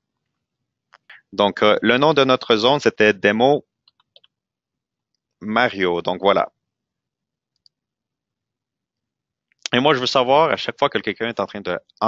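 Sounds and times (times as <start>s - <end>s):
computer mouse click: 3.9s - 4.3s.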